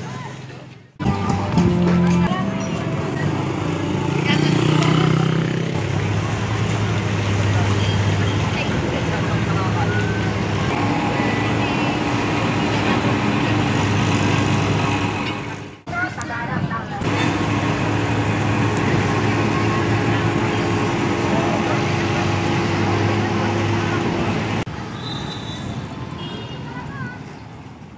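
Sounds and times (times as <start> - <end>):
many people talking: 0.0 - 24.7, 26.5 - 27.6
vehicle engines humming: 0.0 - 27.9.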